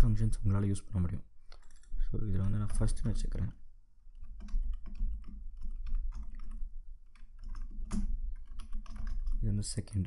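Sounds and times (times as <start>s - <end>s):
computer keyboard typing: 1.5s - 3.3s, 4.1s - 10.0s.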